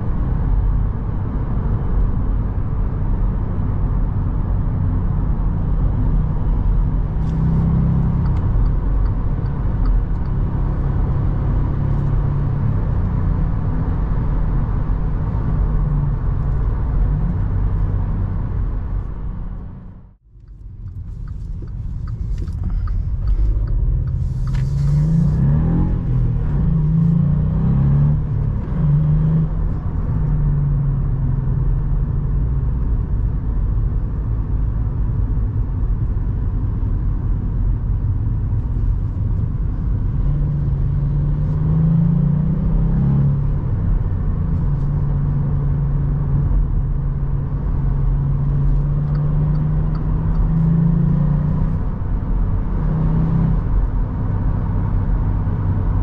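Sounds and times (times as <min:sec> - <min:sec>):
car engine accelerating: 0:00.0 - 0:56.0
road and tyre rumble: 0:00.0 - 0:56.0.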